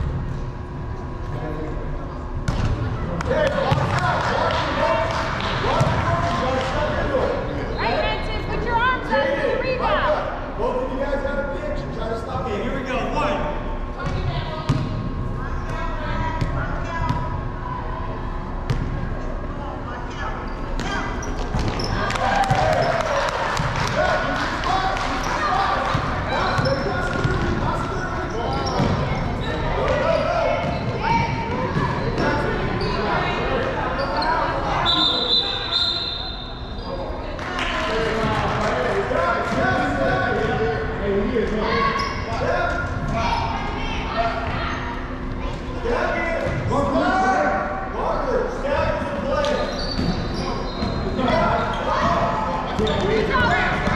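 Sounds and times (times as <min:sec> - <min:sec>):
referee's whistle: 0:34.8 - 0:36.6.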